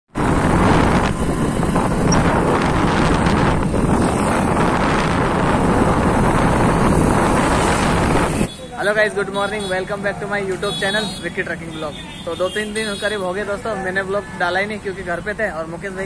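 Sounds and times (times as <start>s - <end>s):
wind buffeting microphone: 0.1s - 8.5s
road noise: 0.1s - 16.0s.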